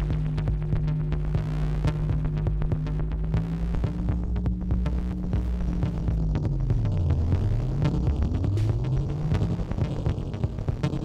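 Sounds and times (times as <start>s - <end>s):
electronic clicks and percussive hits: 0.0s - 11.0s
low synthesizer drone: 0.0s - 11.0s.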